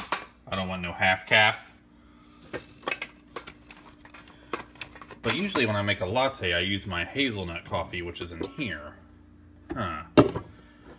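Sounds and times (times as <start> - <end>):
faint steady hum: 0.0 - 10.9.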